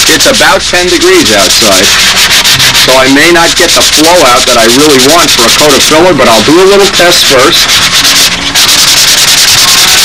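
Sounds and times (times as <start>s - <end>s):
hand sanding scratchy hiss: 0.0s - 10.0s.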